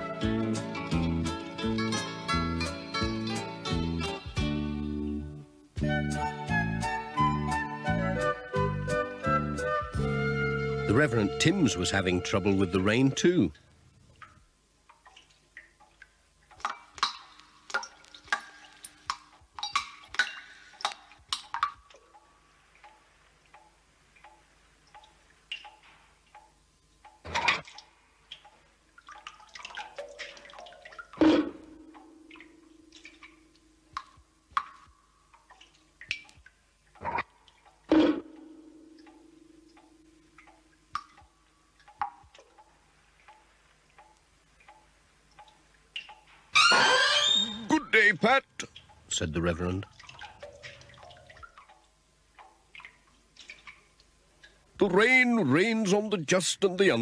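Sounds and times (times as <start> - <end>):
water dripping: 10.8 - 57.0
person speaking: 10.9 - 13.6, 47.4 - 49.9, 54.8 - 57.0
drips plinking into metal buckets: 13.1 - 54.8.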